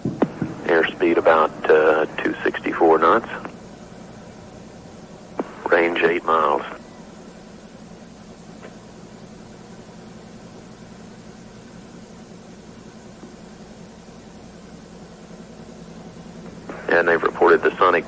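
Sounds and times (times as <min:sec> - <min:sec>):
faint low hum: 0:00.0 - 0:18.0
steady hiss: 0:00.0 - 0:18.0.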